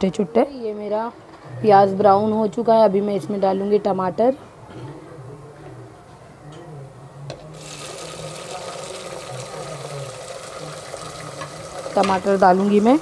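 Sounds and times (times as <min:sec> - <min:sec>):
tomatoes sizzling in hot oil: 0:07.6 - 0:13.0.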